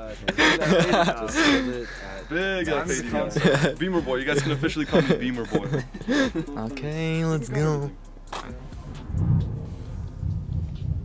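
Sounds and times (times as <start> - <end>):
car engine starting and idling: 3.3 - 11.0.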